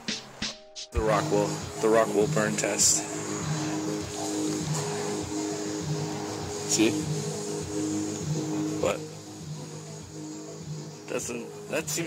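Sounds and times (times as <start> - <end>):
background music with held notes: 0.0 - 12.0
person speaking: 11.1 - 12.0.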